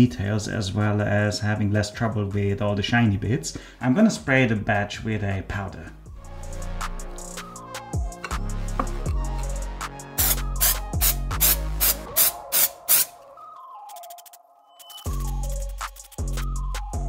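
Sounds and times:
background music with a beat: 6.1 - 17.0
aerosol can hissing squirts: 10.2 - 13.2.

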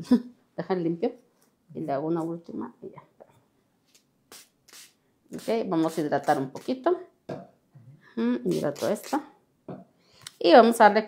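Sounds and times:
spray bottle hisses: 4.3 - 6.8.

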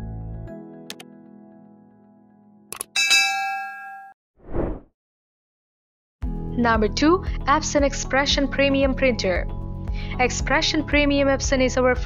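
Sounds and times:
notification bell chime: 3.0 - 4.1
short whoosh: 4.4 - 4.9.

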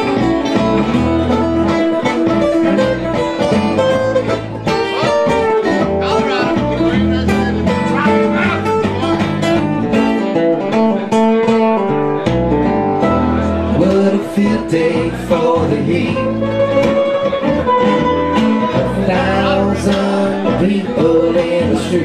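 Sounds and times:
acoustic string band playing: 0.0 - 22.0
people singing: 13.7 - 16.5, 18.7 - 22.0.

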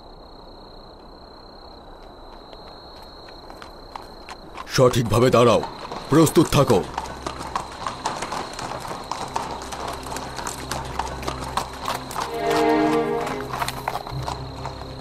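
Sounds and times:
hooves clip-clopping on stone: 1.0 - 15.0
low music drone: 7.0 - 15.0
horse whinnying: 12.2 - 13.9.

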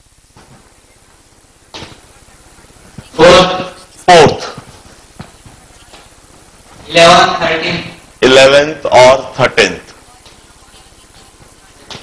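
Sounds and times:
man speaking: 3.1 - 4.6, 6.8 - 9.9.

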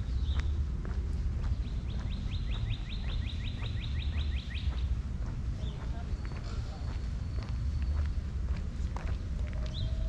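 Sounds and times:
songbird whistling: 1.6 - 4.9, 9.4 - 10.0.

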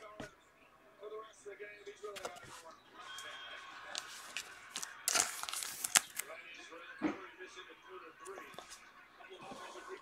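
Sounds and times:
plastic sleeve crinkling: 3.9 - 6.3.

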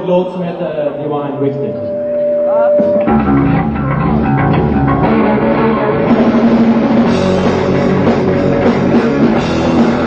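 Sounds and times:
person talking: 0.0 - 3.1
drums: 1.7 - 10.0
electric guitar: 1.9 - 10.0
bass guitar: 2.1 - 10.0
heavy metal band playing: 2.2 - 10.0.

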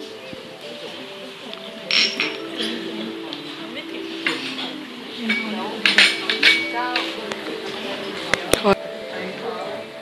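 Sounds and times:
background music: 0.0 - 10.0
voices: 0.0 - 10.0.

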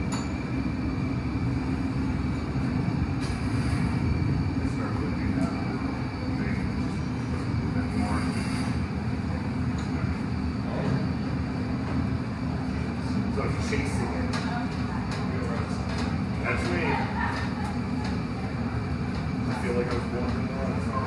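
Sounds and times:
furnace low rumble: 0.0 - 21.0.

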